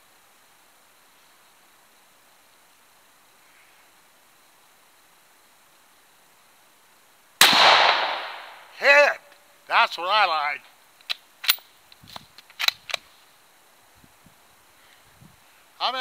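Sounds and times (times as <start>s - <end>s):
faint outdoor background: 0.0s - 16.0s
rifle shot with long tail: 7.4s - 8.7s.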